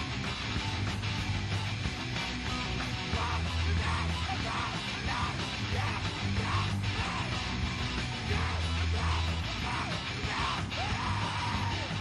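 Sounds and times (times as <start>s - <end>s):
rock song with yelled vocal: 0.0s - 12.0s
steady bass line: 0.0s - 12.0s.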